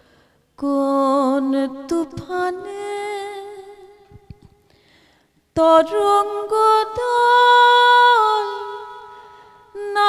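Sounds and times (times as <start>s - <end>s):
woman singing unaccompanied: 0.6s - 4.3s, 5.6s - 9.1s, 9.7s - 10.0s.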